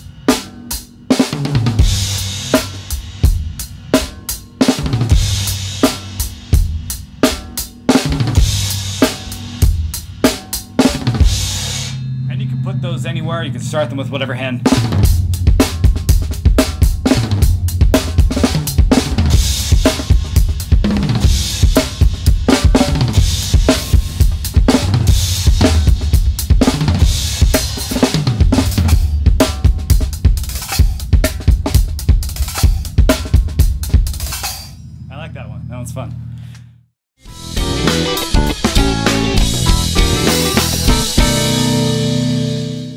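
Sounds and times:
drum kit playing fast: 0.0 - 34.7, 37.2 - 42.9
low cymbal ringing: 11.5 - 17.8
recorded music: 37.2 - 42.9.

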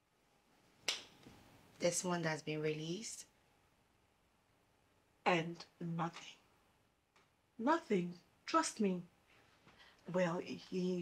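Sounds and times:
woman speaking: 1.8 - 3.3, 5.3 - 6.4, 7.6 - 9.1, 10.1 - 11.0.

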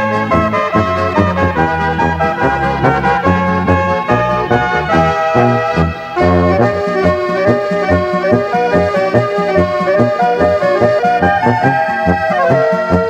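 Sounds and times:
folk music from cassette: 0.0 - 13.0.

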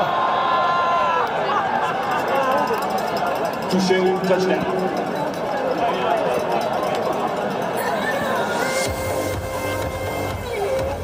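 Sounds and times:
stadium background noise: 0.0 - 11.0
commentator's voice: 3.7 - 5.1.

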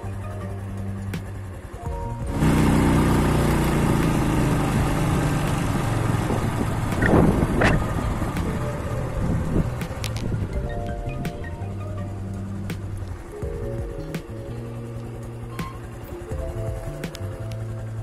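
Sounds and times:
motorcycle engine running: 0.0 - 18.0
wind rushing over microphone: 3.9 - 11.7.

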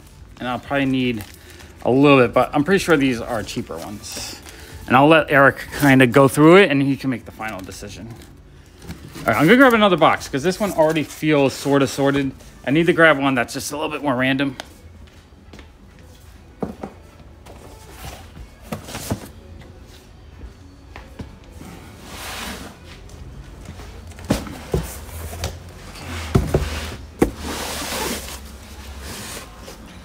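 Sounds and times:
cardboard boxes thumping: 24.2 - 25.6, 26.2 - 27.5
cardboard scraping and rustling: 24.2 - 30.0.

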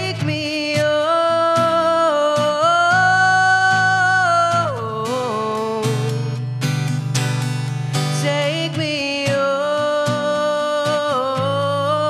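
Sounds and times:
young man singing: 0.0 - 6.4, 8.1 - 12.0
strummed acoustic guitar: 0.0 - 12.0.

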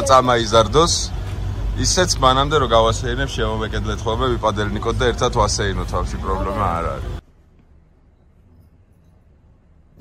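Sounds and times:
people talking: 0.0 - 1.1, 1.8 - 7.2.

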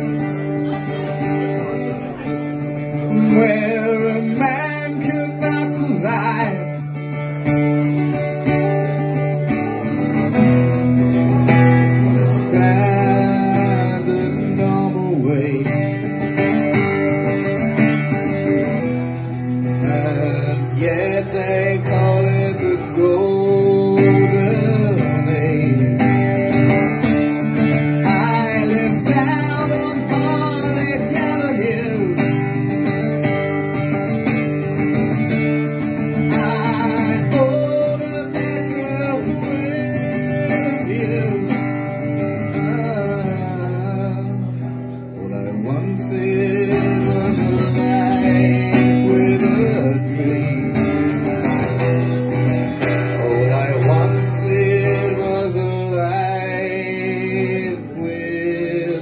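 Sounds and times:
man singing: 0.0 - 33.9, 34.7 - 59.0
acoustic guitar strumming: 0.0 - 59.0.

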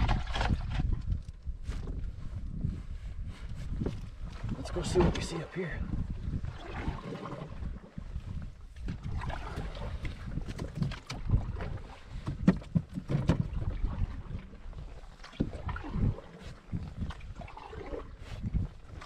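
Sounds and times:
canoe paddling through water: 0.0 - 19.0
wind rumble on microphone: 0.0 - 19.0.

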